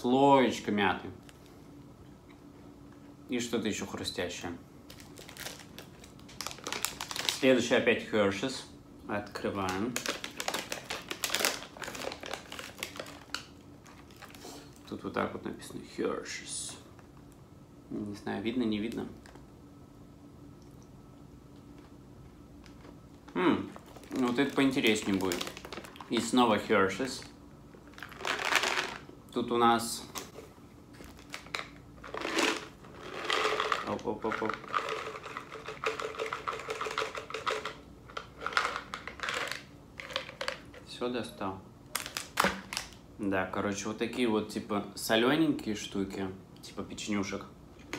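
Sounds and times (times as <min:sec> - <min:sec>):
candy packaging crinkling: 0:04.8 - 0:07.8, 0:09.4 - 0:15.0, 0:22.6 - 0:29.1, 0:30.9 - 0:40.9, 0:41.9 - 0:43.0.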